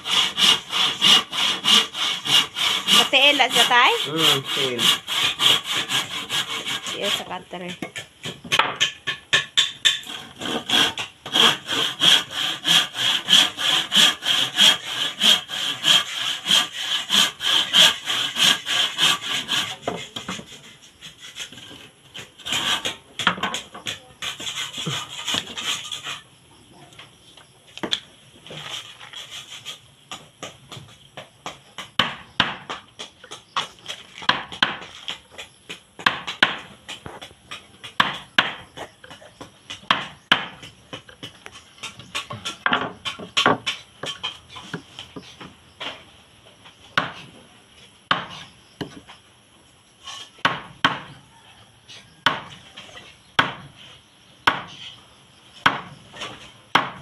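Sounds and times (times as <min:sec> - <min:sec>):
handsaw cutting wood: 0:00.0 - 0:07.7, 0:09.8 - 0:23.0, 0:24.2 - 0:26.2, 0:28.6 - 0:29.8.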